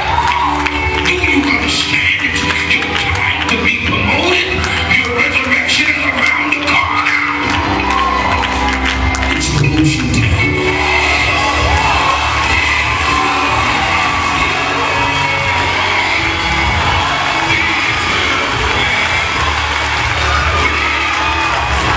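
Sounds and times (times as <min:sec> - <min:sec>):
congregation cheering and shouting: 0:00.0 - 0:21.9
gospel music with singing: 0:00.0 - 0:21.9.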